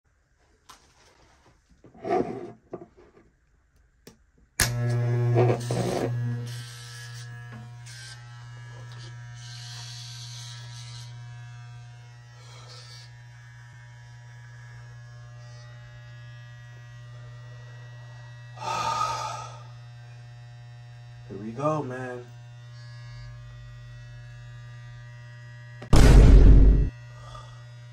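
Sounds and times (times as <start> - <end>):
electric hair clipper buzzing: 4.6 - 27.9.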